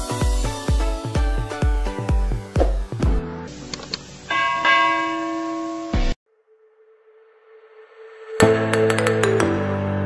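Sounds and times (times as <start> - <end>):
short low thump: 2.6 - 2.9
bell chime ringing: 4.3 - 6.2.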